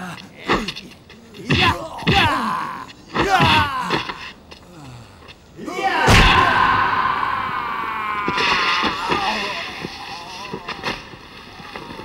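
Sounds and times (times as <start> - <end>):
man groaning in pain: 1.4 - 5.1.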